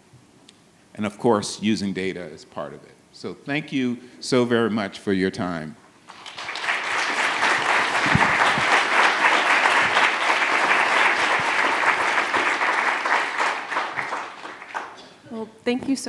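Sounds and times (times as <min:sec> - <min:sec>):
audience applauding: 0:06.1 - 0:15.2.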